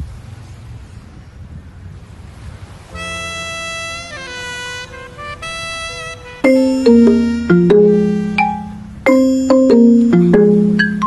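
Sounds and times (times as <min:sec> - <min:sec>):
wind buffeting microphone: 0:00.0 - 0:03.1
surf washing: 0:00.0 - 0:11.0
horn-like musical note: 0:03.0 - 0:09.4.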